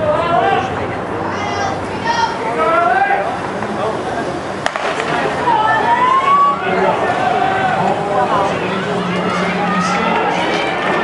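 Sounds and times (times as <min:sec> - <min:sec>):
crowd shouting: 0:00.0 - 0:03.5, 0:04.6 - 0:11.0
spectators' voices: 0:00.0 - 0:11.0
starting gun crack: 0:04.6 - 0:05.3.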